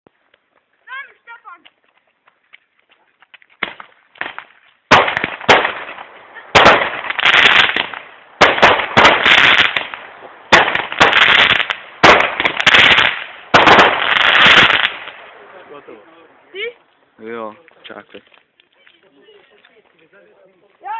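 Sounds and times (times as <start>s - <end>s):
small firework pops: 3.3s - 15.2s
firework bursts with crackling: 3.6s - 15.6s.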